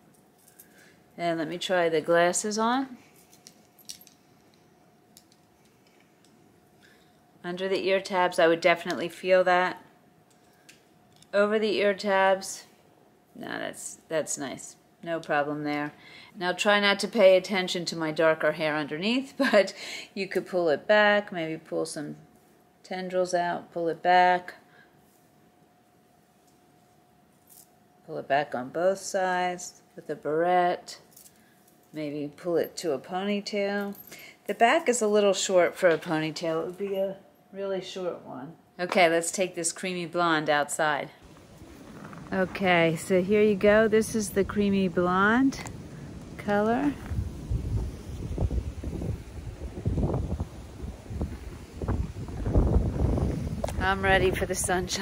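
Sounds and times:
faint steady hum: 0.0s - 55.0s
wind buffeting microphone: 41.3s - 55.0s.

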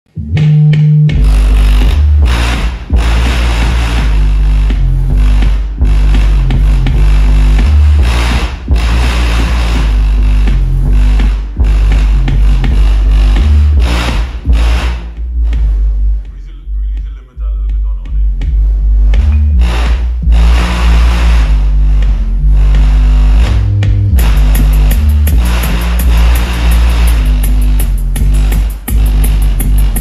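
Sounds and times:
loud bass-heavy music: 0.0s - 30.0s.

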